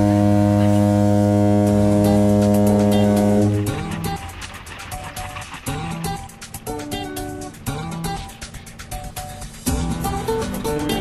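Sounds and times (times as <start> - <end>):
boat horn low blast: 0.0 - 4.3.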